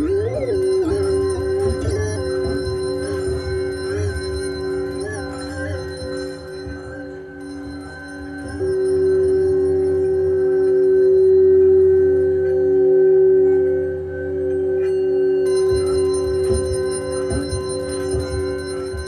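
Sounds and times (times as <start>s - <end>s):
low irregular pulsing: 0.0s - 19.0s
sustained ringing drone tones: 0.0s - 19.0s.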